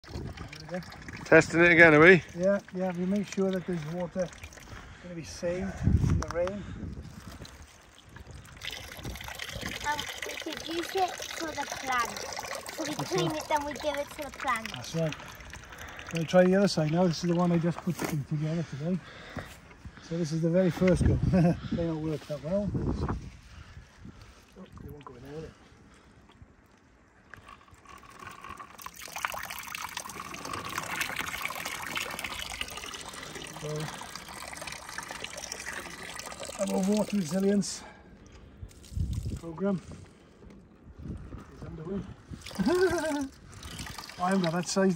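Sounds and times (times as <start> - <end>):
water splashing on plastic sheeting: 7.2 - 18.2, 42.4 - 44.9.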